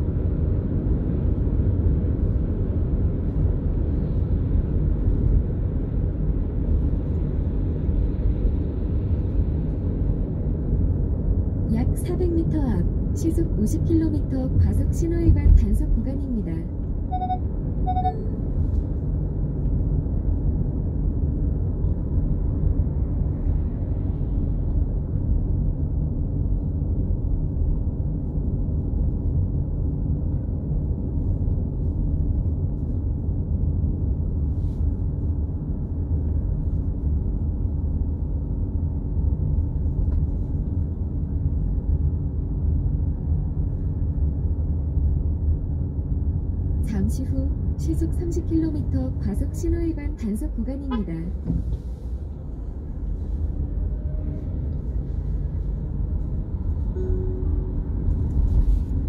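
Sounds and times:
car tyre and engine rumble: 0:00.0 - 0:13.8, 0:14.6 - 0:59.0.

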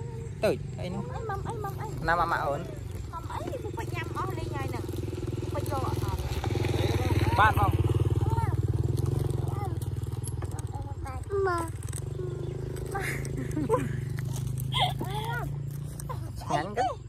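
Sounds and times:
small engine running: 0:00.0 - 0:17.0.

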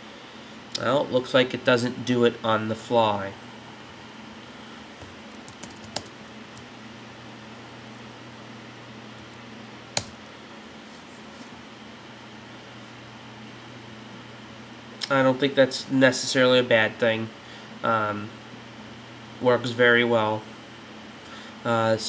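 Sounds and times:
low hum and hiss: 0:00.0 - 0:22.0
computer keyboard keystrokes: 0:05.3 - 0:06.7, 0:10.0 - 0:10.2.

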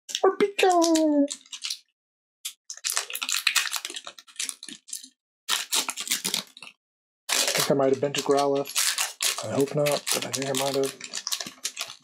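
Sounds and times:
foil wrapper crinkling and tearing: 0:00.6 - 0:01.9, 0:02.5 - 0:12.0.

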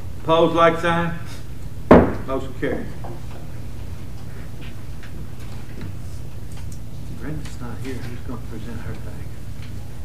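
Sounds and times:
low room hum: 0:00.0 - 0:10.0
papers rustling and clicking: 0:05.0 - 0:09.8.

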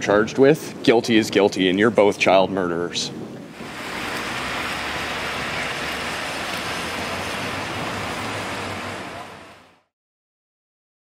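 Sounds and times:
rain on a wet street: 0:03.6 - 0:09.9.

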